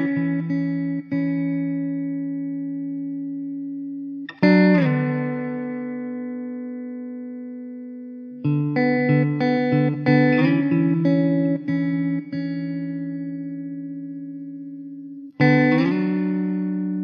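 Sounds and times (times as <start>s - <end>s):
plucked guitar music: 0.0s - 17.0s.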